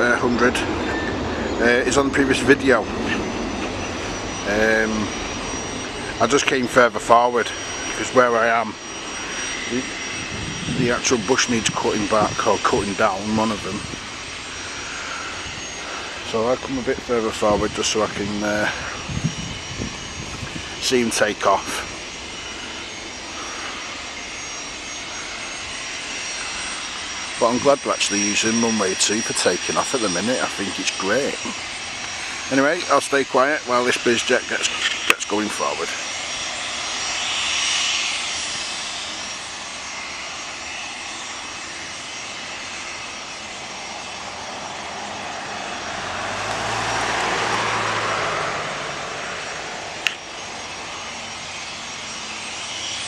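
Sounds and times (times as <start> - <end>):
jet engine whine: 0.0 - 53.0.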